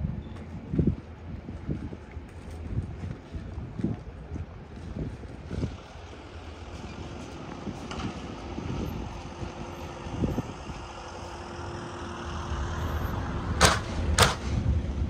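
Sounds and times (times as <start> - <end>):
sharp knock: 13.6 - 14.6.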